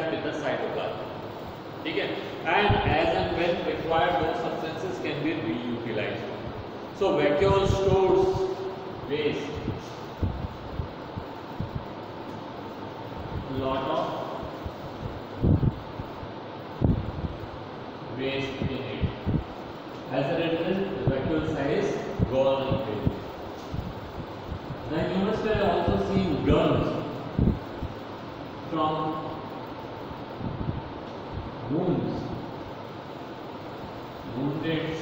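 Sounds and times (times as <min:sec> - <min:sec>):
air buffeting microphone: 0:00.0 - 0:35.0
steady room hum: 0:00.0 - 0:35.0.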